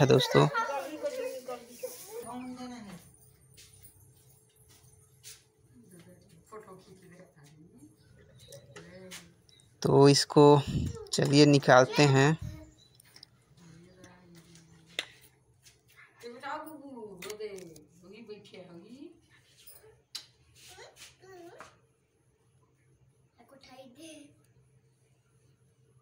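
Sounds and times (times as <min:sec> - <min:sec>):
low steady hum: 0:05.7 - 0:15.4.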